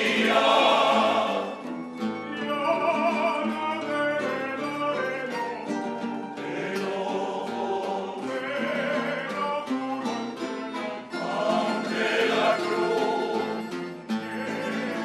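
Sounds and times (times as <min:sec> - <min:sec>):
male choir singing: 0:00.0 - 0:05.5, 0:06.3 - 0:15.0
acoustic guitars strumming: 0:00.0 - 0:15.0.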